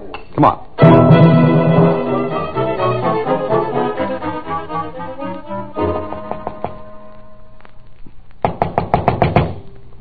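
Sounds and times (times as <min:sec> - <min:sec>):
knuckles knocking on door: 0:06.3 - 0:06.8, 0:08.4 - 0:09.6.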